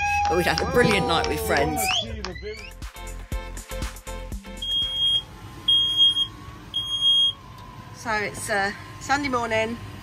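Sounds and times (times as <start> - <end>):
music with a beat: 2.1 - 5.0
smoke alarm beeping: 4.6 - 7.4.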